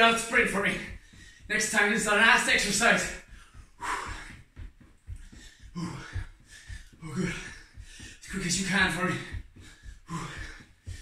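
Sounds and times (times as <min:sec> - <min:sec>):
man breathing hard: 0:00.0 - 0:01.6, 0:02.2 - 0:11.0
feet thudding on rug floor: 0:00.0 - 0:11.0.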